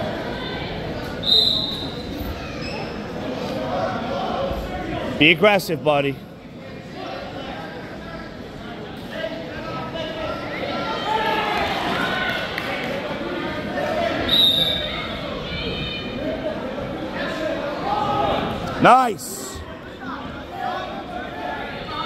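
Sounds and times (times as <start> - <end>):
many voices chattering: 0.0 - 22.0.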